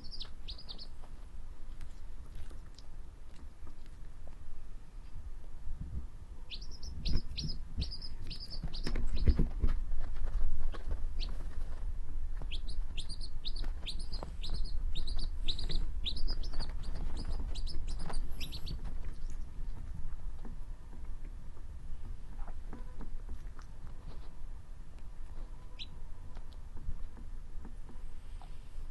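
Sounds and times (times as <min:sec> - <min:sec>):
quail chick peeping: 0:00.0 - 0:02.6, 0:06.4 - 0:11.8, 0:12.4 - 0:21.1, 0:25.0 - 0:28.7
rustling: 0:06.8 - 0:20.7.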